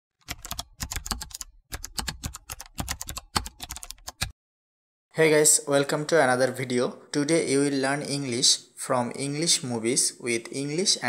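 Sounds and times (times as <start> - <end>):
computer keyboard typing: 0.2 - 4.3.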